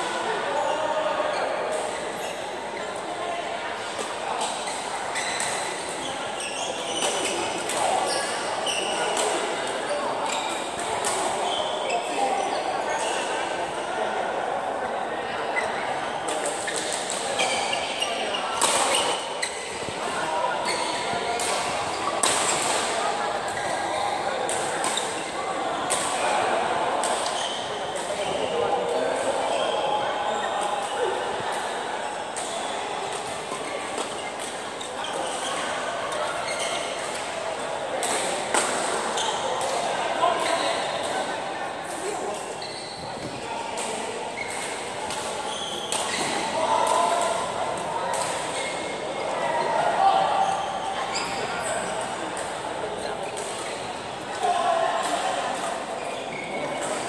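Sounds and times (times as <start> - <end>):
murmur of voices: 0.0 - 57.0.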